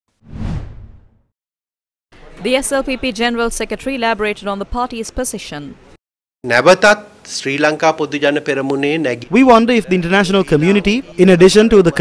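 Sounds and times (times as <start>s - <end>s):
deep whoosh: 0.2s - 1.2s.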